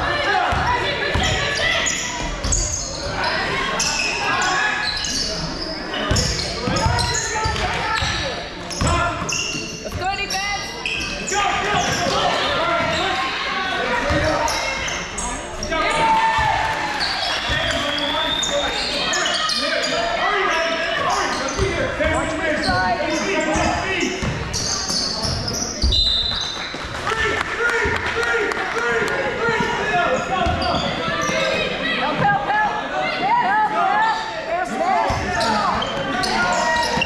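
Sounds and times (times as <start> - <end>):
voices calling out: 0.0 - 37.0.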